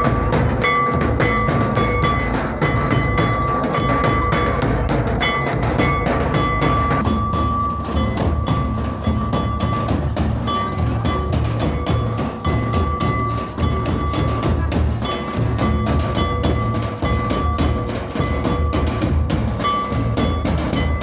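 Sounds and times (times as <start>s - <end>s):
hand drums beaten in dance rhythm: 0.0s - 21.0s.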